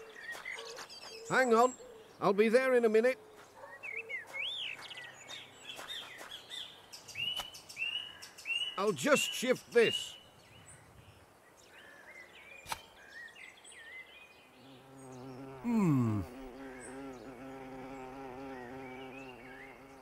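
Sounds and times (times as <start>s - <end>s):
faint bird chirps: 3.5s - 20.0s
bee buzzing: 14.6s - 20.0s.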